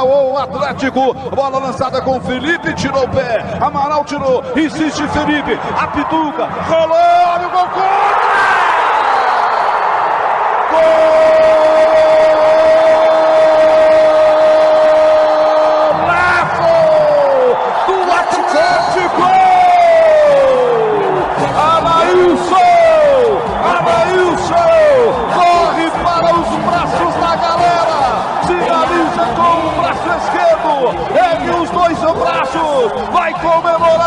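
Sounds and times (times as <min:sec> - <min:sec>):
commentator shouting goal: 0:00.0 - 0:08.4, 0:10.7 - 0:34.0
crowd noise: 0:00.0 - 0:34.0.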